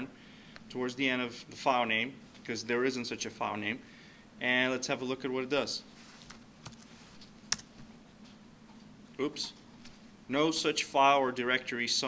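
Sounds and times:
computer keyboard clicks: 7.5 - 7.7.

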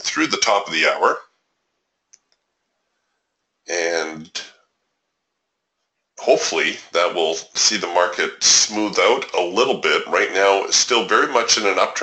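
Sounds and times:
man speaking: 0.0 - 1.2, 3.7 - 4.5, 6.2 - 12.0.

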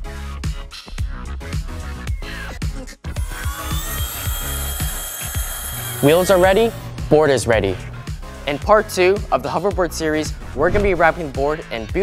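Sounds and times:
background music with steady beat: 0.0 - 12.0
spinning wheel high-pitched whine: 3.2 - 7.1.

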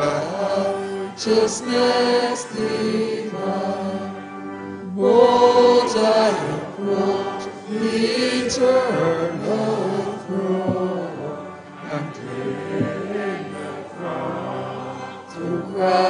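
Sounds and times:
choir singing a slow chant: 0.0 - 16.0.

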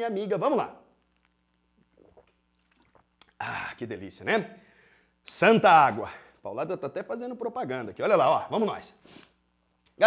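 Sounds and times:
gulps of water being swallowed: 1.2 - 3.6.

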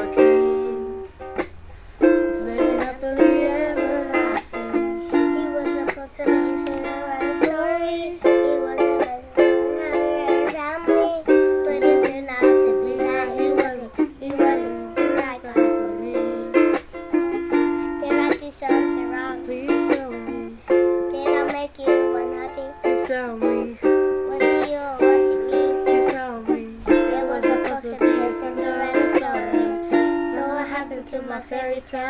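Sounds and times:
ukulele strummed chords: 0.0 - 32.0.

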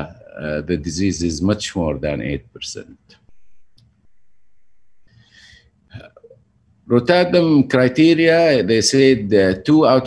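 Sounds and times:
short breath: 5.1 - 5.7.

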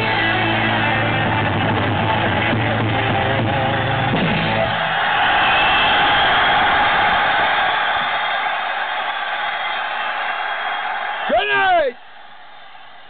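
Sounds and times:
live rock song: 0.0 - 4.7
audience applauding and cheering: 0.0 - 13.0.

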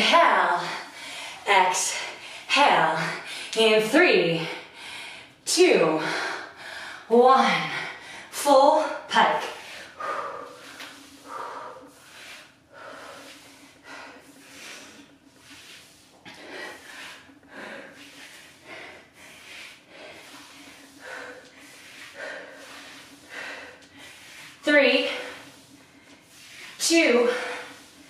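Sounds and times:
faint steady hum: 0.0 - 28.0
woman breathing heavily: 0.4 - 3.6, 4.3 - 28.0.

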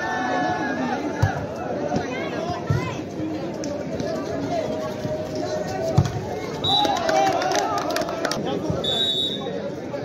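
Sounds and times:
crowd shouting and chatter: 0.0 - 10.0.

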